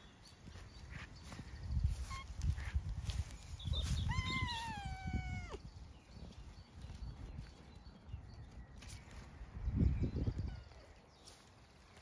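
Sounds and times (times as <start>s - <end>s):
cat meowing: 4.0s - 5.6s.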